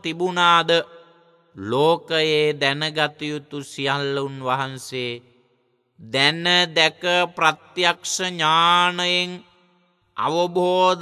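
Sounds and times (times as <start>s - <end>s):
man chanting: 0.0s - 5.4s, 6.0s - 11.0s.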